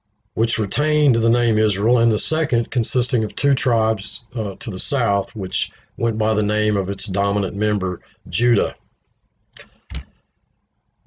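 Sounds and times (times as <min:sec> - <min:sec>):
man breathing: 0:05.7 - 0:06.0
lip click: 0:09.5 - 0:10.1.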